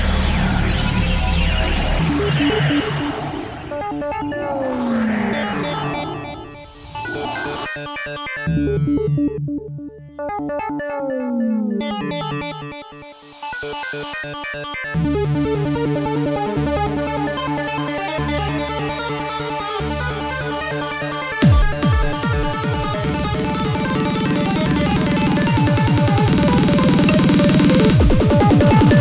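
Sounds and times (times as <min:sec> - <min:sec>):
heavy bass: 0:00.0 - 0:07.7, 0:21.4 - 0:29.0
trance music with synthesizer riffs: 0:00.0 - 0:29.0
falling synth glide: 0:01.0 - 0:08.5
swells of hiss: 0:06.6 - 0:07.8.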